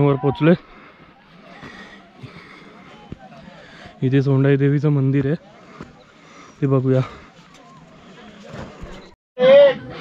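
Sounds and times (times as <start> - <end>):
footsteps on wet mud: 0.6 - 9.1.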